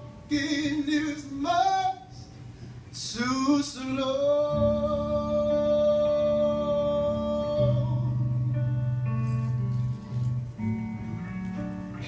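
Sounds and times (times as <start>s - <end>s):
blues band playing: 5.0s - 12.0s.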